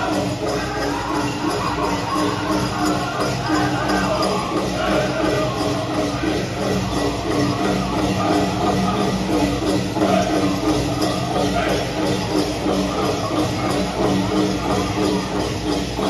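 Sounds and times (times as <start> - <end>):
group singing in chorus: 0.0 - 15.4.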